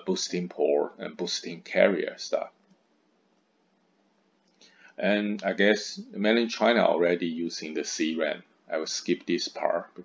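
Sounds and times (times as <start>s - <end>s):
man speaking: 0.0s - 2.6s, 5.0s - 10.0s
faint recording hiss: 0.0s - 10.0s
man breathing: 4.6s - 5.0s.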